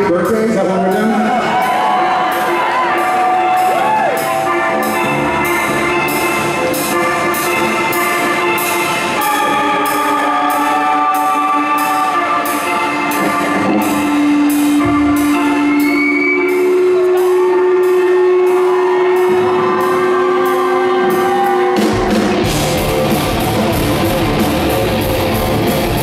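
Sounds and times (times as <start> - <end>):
drums steady cymbal beat: 0.0 - 26.0
rock band with distorted guitars: 0.0 - 26.0
long held electric guitar notes: 1.2 - 26.0.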